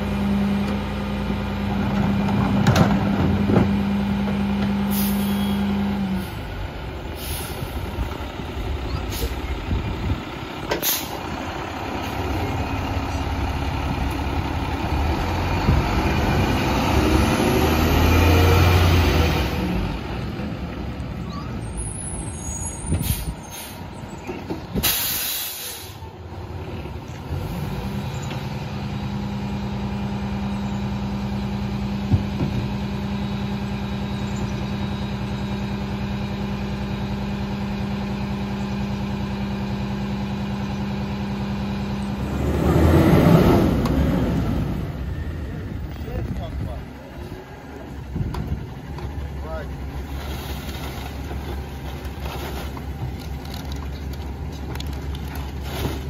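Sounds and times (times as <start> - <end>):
garbage truck diesel engine revving: 0.0 - 56.0
air brake hisses: 4.9 - 5.6, 24.8 - 26.0.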